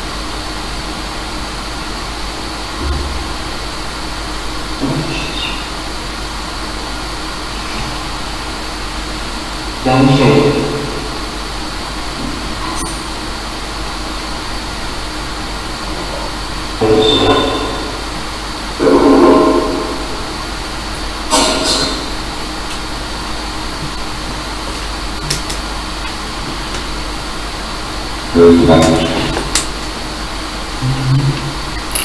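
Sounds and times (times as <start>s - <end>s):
static hiss with high whistle: 0.0s - 32.0s
echoing voice-like fragments: 2.5s - 5.9s, 9.8s - 13.7s, 15.5s - 23.0s, 26.2s - 32.0s.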